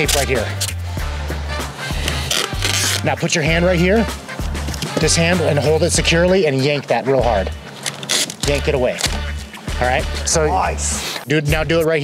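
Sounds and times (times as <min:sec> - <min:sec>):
packing tape pulled off roll: 0:00.0 - 0:00.8, 0:01.9 - 0:03.1, 0:07.8 - 0:09.2
background music with bass line: 0:00.0 - 0:12.0.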